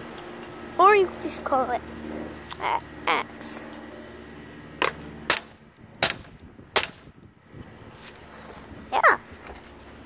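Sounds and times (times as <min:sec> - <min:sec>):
sharp knocks or clicks: 0:04.8 - 0:07.1.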